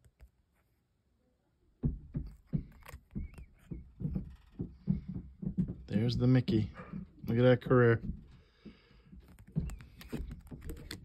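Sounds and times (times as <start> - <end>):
camera bumped: 2.3 - 3.7
plastic card holders clicking: 2.3 - 3.7, 9.2 - 11.0.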